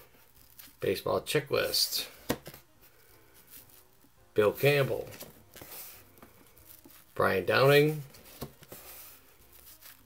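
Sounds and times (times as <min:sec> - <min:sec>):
cards handling noise: 0:00.0 - 0:01.0, 0:01.6 - 0:10.0.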